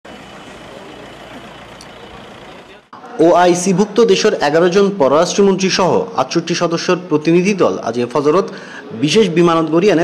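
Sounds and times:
minibus engine and tyre noise: 0.0 - 2.9.

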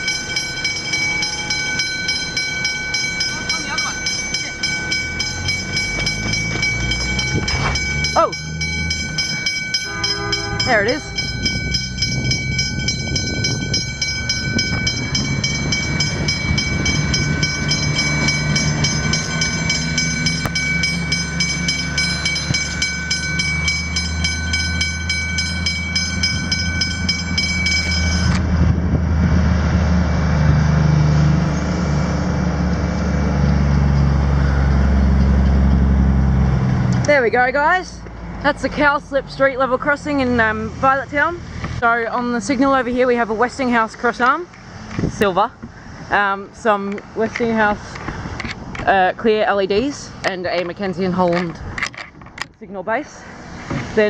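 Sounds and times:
level crossing bells ringing: 0.0 - 28.4
rail vehicle engine rumble: 0.0 - 54.0.

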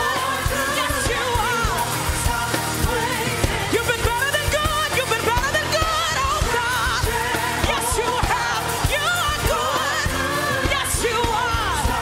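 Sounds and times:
band playing: 0.0 - 12.0
bass: 0.0 - 12.0
woman singing with vibrato: 0.0 - 12.0.

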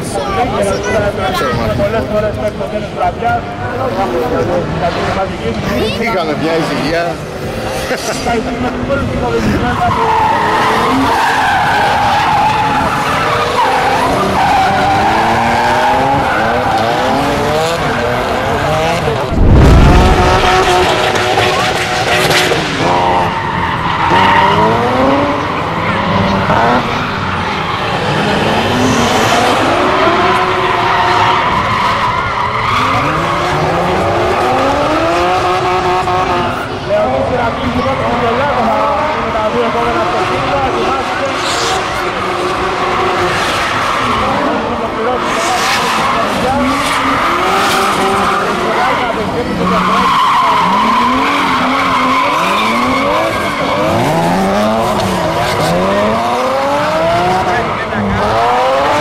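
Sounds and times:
car engines revving hard: 0.0 - 59.0
tyres skidding: 0.0 - 59.0
loud low thump: 19.3 - 20.4.

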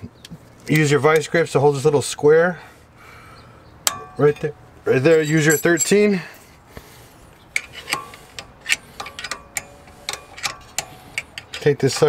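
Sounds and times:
wrench clicking on metal: 7.5 - 12.0.

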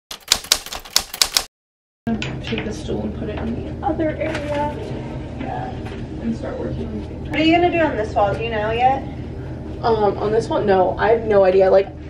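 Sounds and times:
typewriter key clacks: 0.1 - 1.5.

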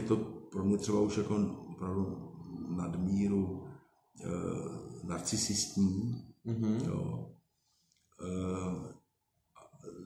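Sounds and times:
man talking: 0.0 - 7.4, 8.2 - 9.0.

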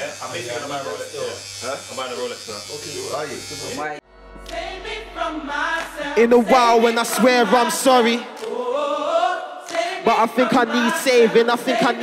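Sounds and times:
electric hair clippers buzzing: 0.0 - 4.0
men chattering: 0.0 - 4.0.

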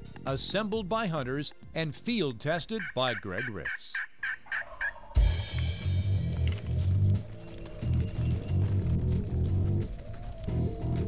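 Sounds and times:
turkey yelps: 2.8 - 5.4, 9.7 - 11.0
music with heavy drum beat: 5.2 - 11.0.

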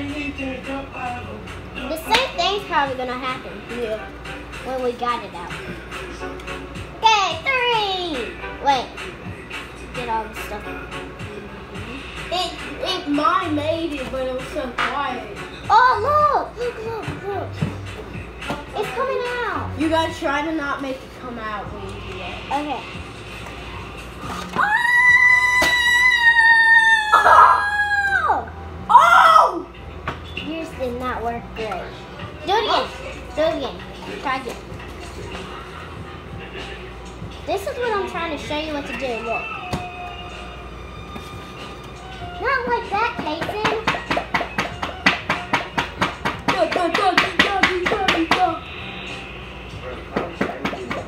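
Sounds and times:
child's voice: 1.9 - 4.0, 7.0 - 9.0, 10.0 - 10.6, 12.3 - 17.8, 18.7 - 21.6, 30.5 - 34.6, 37.5 - 39.4, 42.1 - 44.0, 46.5 - 48.6
child crying out: 24.6 - 29.7
child squealing: 24.6 - 29.7
rapid hand taps: 43.2 - 48.5, 50.1 - 51.0.

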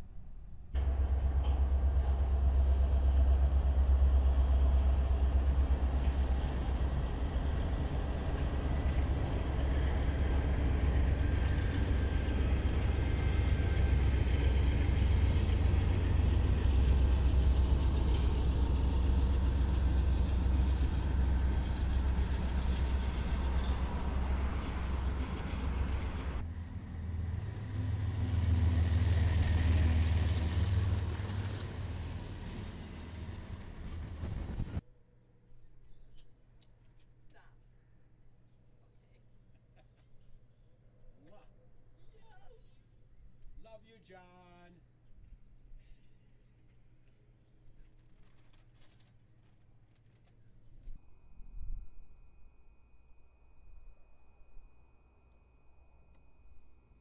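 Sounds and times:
diesel locomotive engine rumble: 0.7 - 34.8
wheels on rails: 0.8 - 34.8.

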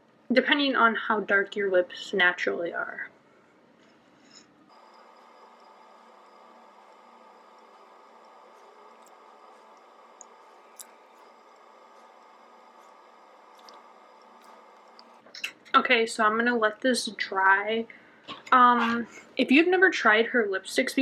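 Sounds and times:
faint room hum: 0.0 - 21.0
wet lipstick applicator sounds: 8.6 - 15.5.

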